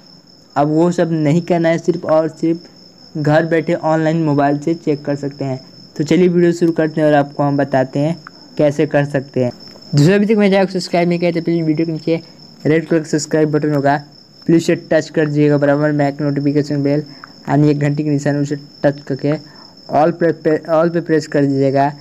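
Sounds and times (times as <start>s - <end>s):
man speaking: 0.6s - 22.0s.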